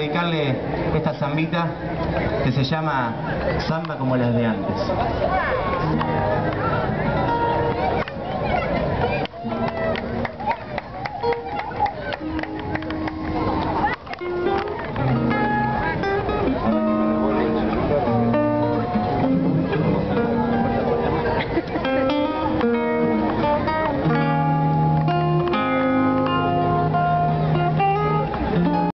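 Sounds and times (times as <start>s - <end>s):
folk guitar over loudspeakers: 0.0s - 28.9s.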